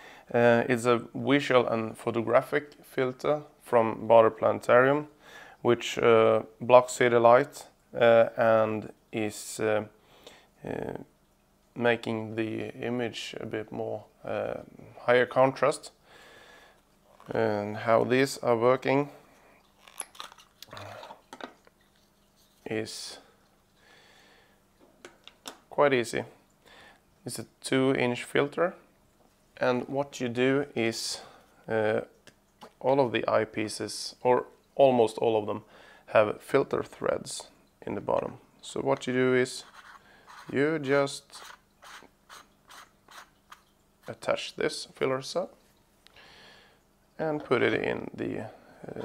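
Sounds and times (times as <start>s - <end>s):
filter screwing scrapes: 39.5s - 44.2s.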